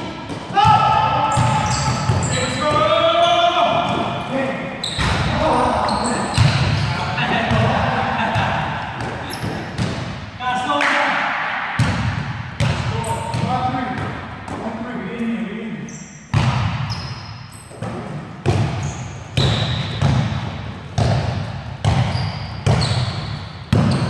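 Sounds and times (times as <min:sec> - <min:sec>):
basketball bouncing in gym: 0:00.0 - 0:04.2, 0:04.8 - 0:10.2, 0:11.8 - 0:14.8, 0:15.9 - 0:24.0.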